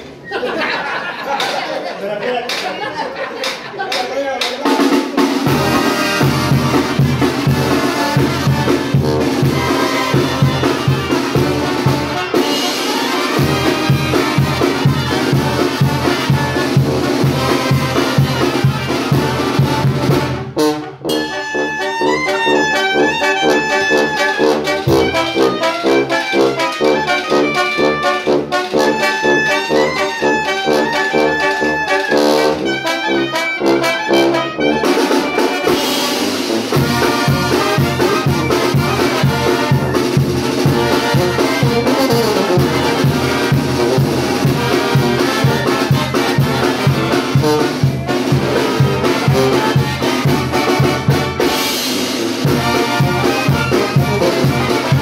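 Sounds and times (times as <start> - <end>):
snare and bass drum: 4.4 - 21.1, 22.4 - 55.0
brass band playing: 4.6 - 55.0.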